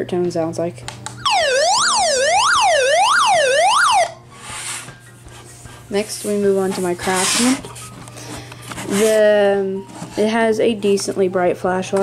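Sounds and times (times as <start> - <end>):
weather radio alert siren: 1.2 - 4.2.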